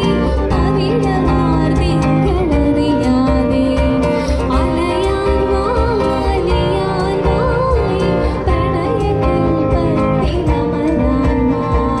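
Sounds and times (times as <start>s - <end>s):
cajon beat: 0.0s - 12.0s
strummed acoustic guitar: 0.0s - 12.0s
woman singing: 0.0s - 12.0s.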